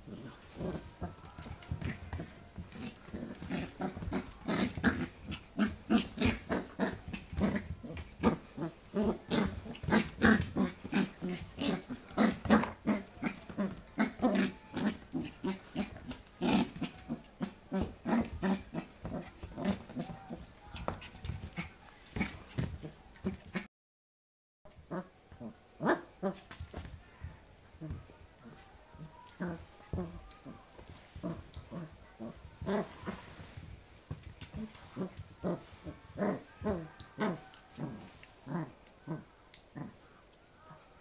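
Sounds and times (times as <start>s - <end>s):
puppy play-growling: 0.0s - 23.7s, 24.7s - 27.1s, 27.7s - 41.0s.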